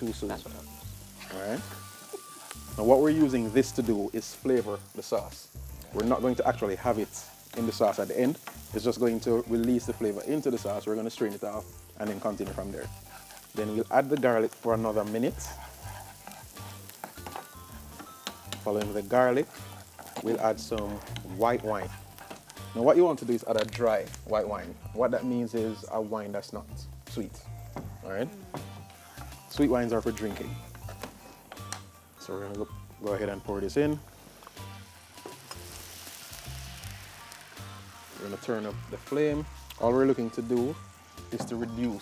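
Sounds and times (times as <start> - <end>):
bass line music: 0.0 - 1.9, 2.6 - 42.0
food sizzling in hot oil: 0.0 - 42.0
wooden spatula scraping pan: 13.0 - 22.5.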